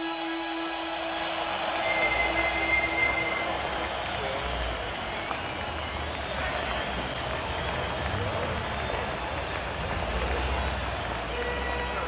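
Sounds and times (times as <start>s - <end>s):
high wheel squeal: 0.0s - 5.8s
crowd murmur: 0.0s - 12.0s.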